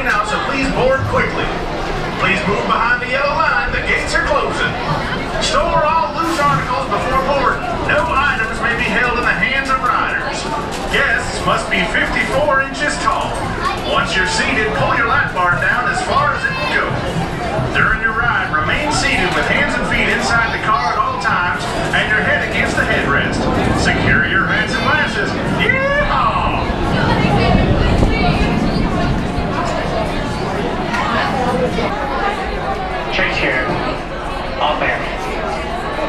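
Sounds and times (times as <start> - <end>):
children's voices: 0.0 - 36.0
indistinct chatter of riders: 0.0 - 36.0.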